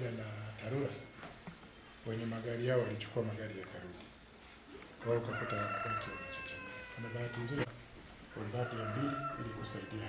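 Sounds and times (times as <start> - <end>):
rooster crowing: 5.1 - 10.0.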